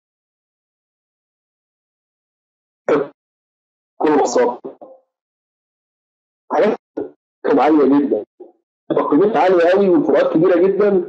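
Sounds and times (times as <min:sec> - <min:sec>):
person speaking over conference link: 0:04.0 - 0:05.0, 0:06.5 - 0:11.0.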